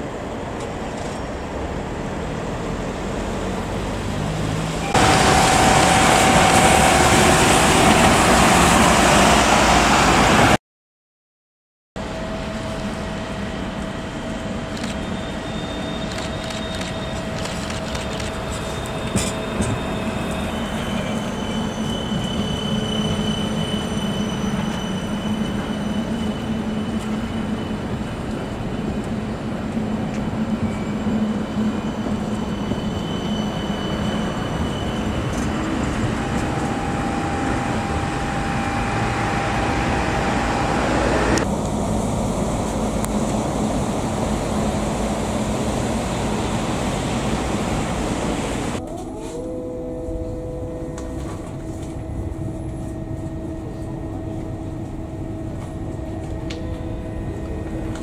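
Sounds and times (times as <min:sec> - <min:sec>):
tram rolling on rails: 0:00.0 - 0:10.6, 0:12.0 - 0:58.0
thin electric whine: 0:34.3 - 0:41.4.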